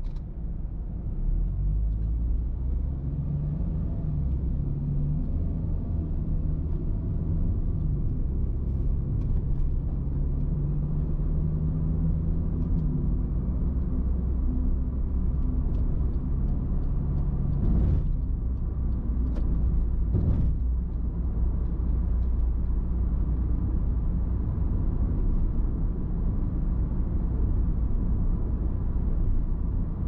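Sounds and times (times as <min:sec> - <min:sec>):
car road noise inside cabin: 0:00.0 - 0:30.0.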